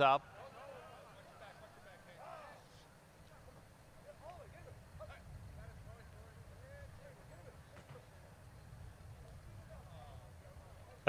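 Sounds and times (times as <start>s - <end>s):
distant voices: 0.0s - 11.0s
low steady rumble: 3.3s - 11.0s.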